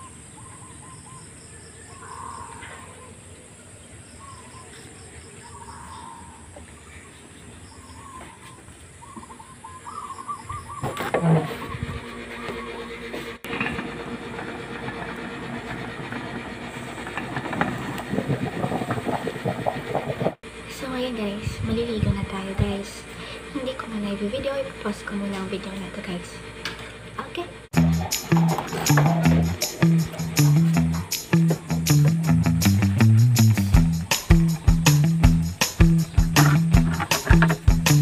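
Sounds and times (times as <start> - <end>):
faint bird chirps: 0.0 - 12.9
pot of rice boiling: 13.5 - 20.4.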